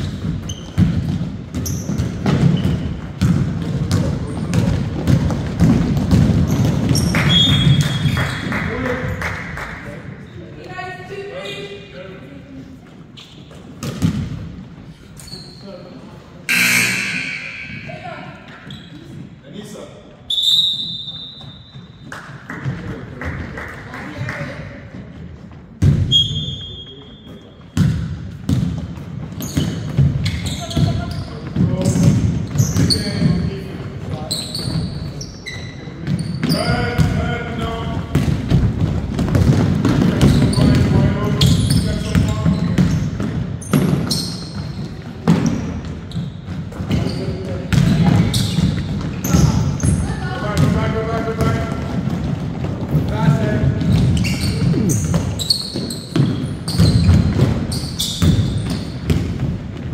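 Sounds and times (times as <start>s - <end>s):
sneakers squeaking: 0.0s - 9.1s, 10.2s - 12.0s, 12.6s - 22.2s, 24.8s - 59.9s
basketball bouncing on hardwood: 0.1s - 8.0s, 27.8s - 33.3s, 38.0s - 44.1s, 51.4s - 59.9s.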